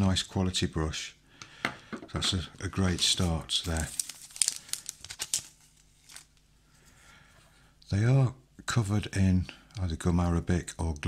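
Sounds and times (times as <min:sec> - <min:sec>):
cellophane wrapping crinkling: 0:02.6 - 0:06.5.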